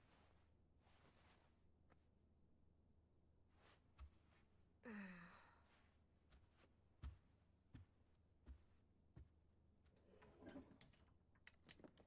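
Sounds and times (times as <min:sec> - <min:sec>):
faint sigh-like vocal sound: 0:04.8 - 0:05.7.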